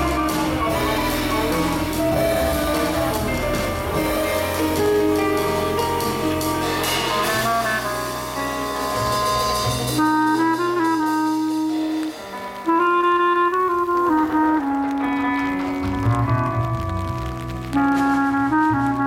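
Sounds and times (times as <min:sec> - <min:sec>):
double bass: 0:00.0 - 0:19.0
drum-kit cymbals: 0:00.0 - 0:19.0
trumpet playing melodic phrases: 0:00.0 - 0:19.0.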